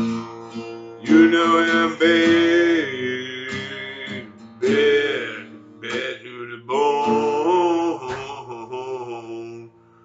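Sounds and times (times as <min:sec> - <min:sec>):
acoustic guitar ringing: 0:00.0 - 0:10.0
man singing a held note: 0:01.1 - 0:09.8.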